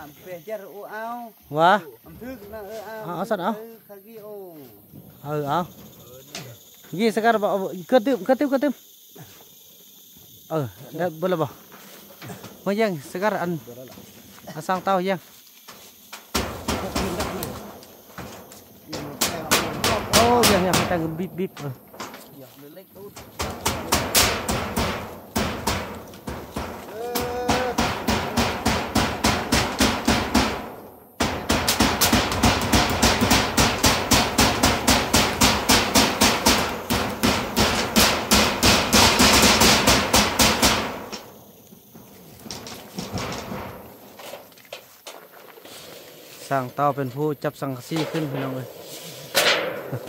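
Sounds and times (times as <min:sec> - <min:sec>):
hammer on metal roofing sheet: 0:16.3 - 0:22.2, 0:23.1 - 0:41.4.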